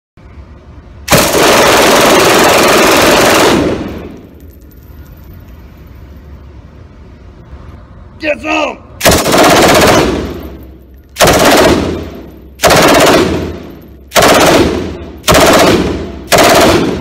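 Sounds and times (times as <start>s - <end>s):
machine gun burst: 1.1s - 4.1s, 9.0s - 10.5s, 11.2s - 17.0s
light metallic clinks: 4.2s - 6.3s.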